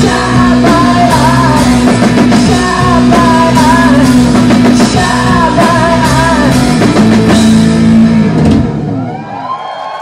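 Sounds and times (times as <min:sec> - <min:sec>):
crowd cheering: 0:08.4 - 0:10.0.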